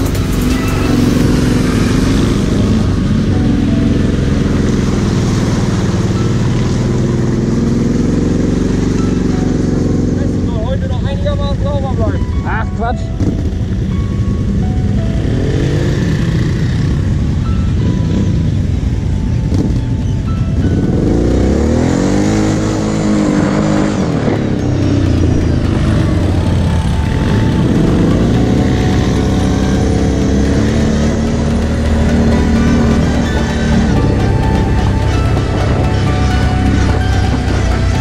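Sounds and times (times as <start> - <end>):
electronic music: 0.0 - 38.0
quad bike engine revving: 0.0 - 38.0.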